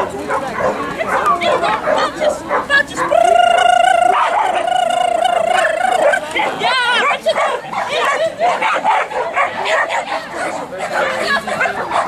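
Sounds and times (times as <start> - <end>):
dog barking and yipping: 0.0 - 4.7, 5.5 - 12.0
wavering high-pitched call: 3.2 - 6.2.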